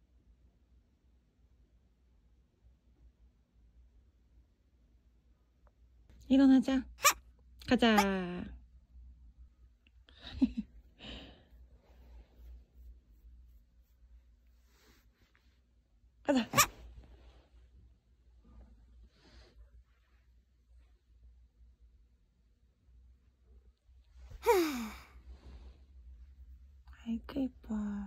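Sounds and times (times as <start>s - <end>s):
hand rubbing dog fur: 11.8s - 15.7s
person sighing: 24.3s - 25.2s.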